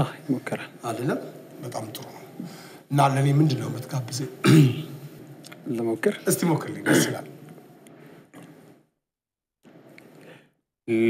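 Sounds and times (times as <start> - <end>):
man speaking: 0.0 - 7.4.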